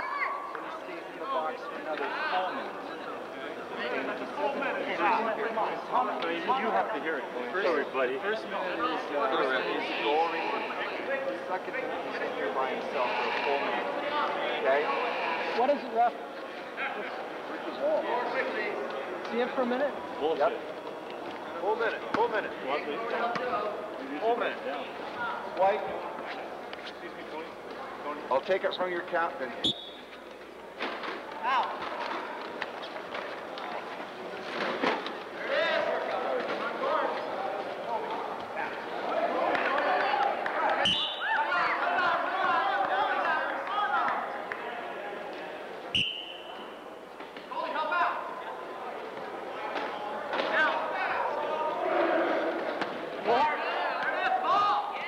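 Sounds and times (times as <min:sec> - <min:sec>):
people talking indistinctly: 0:00.0 - 0:55.0.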